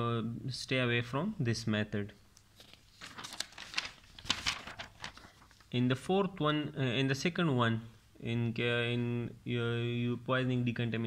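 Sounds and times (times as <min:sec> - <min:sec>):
paper rustling and crinkling: 0:02.4 - 0:05.8.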